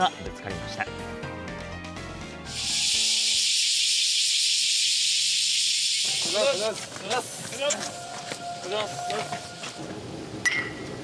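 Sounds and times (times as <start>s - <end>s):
music: 0.0s - 3.6s
loud steady high hiss: 2.5s - 7.7s
voices: 6.2s - 9.8s.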